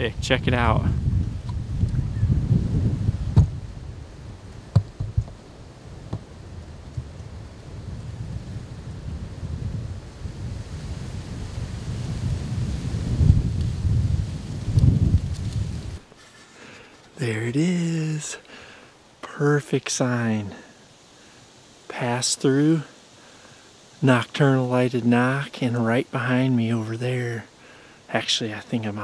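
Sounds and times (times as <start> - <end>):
wind buffeting microphone: 0.0 - 16.1.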